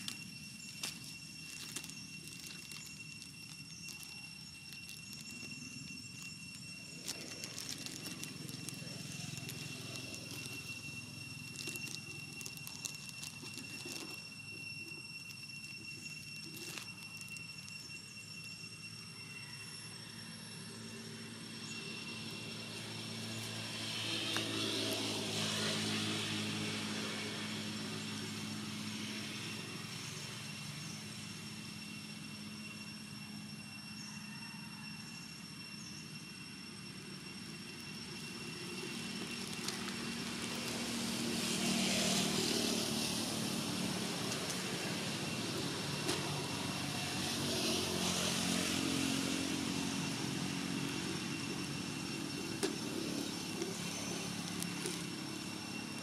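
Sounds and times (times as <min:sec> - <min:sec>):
faint high-pitched tones: 0:00.0 - 0:27.6
vehicles passing by: 0:06.9 - 0:14.2, 0:20.7 - 0:31.0, 0:38.3 - 0:56.0.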